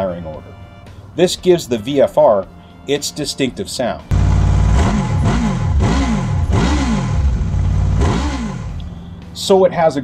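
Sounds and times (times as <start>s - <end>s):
motorcycle engine revving: 4.1s - 9.0s.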